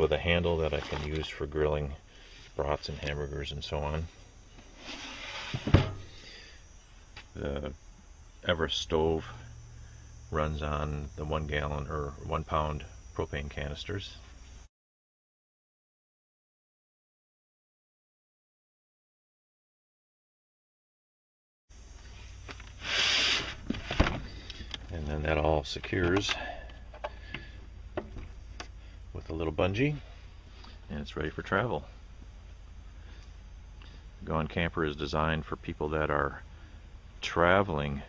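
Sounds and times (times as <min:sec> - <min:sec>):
steady low hum: 0:00.0 - 0:14.7, 0:21.7 - 0:38.0
wooden drawer sliding: 0:04.7 - 0:06.0
drawer knocking shut: 0:05.6 - 0:06.0.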